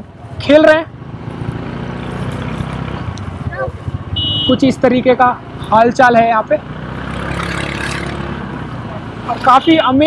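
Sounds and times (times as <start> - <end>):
motorcycle engine and road noise: 0.0 - 10.0.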